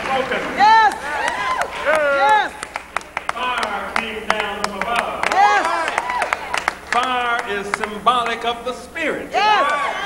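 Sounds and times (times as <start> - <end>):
hand claps: 0.0 - 8.4
congregation murmuring: 0.0 - 9.9.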